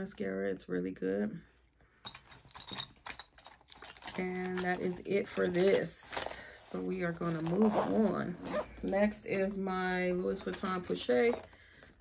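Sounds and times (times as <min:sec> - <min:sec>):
plastic makeup items clicking: 0:02.1 - 0:05.9.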